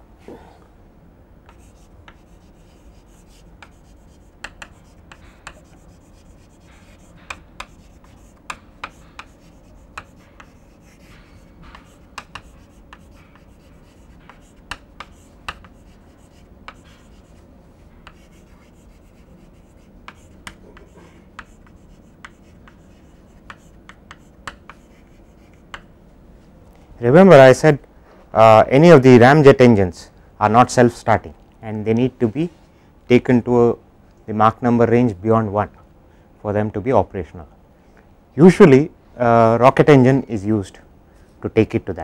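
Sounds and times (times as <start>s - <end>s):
chalk writing on chalkboard: 1.5s - 25.9s.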